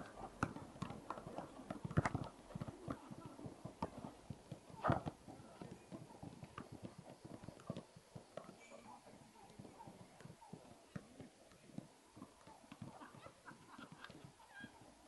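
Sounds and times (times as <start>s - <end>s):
footballs being kicked: 0.0s - 14.8s.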